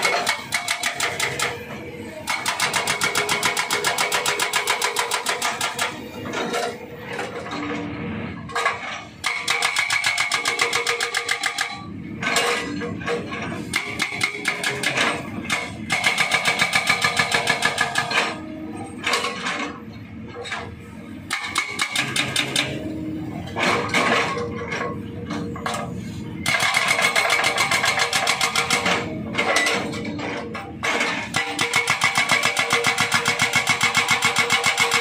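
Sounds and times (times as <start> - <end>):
hydraulic breaker hammering rock: 0.0 - 6.7, 9.2 - 12.8, 13.4 - 18.4, 21.3 - 22.9, 26.4 - 35.0.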